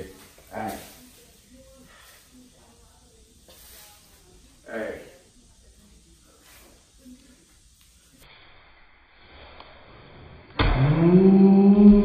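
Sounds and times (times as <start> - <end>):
faint room noise: 0.0 - 10.6.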